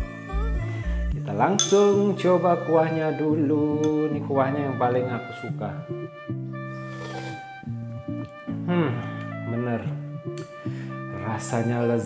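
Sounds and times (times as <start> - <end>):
background music: 0.0 - 12.0
man humming: 8.6 - 9.4.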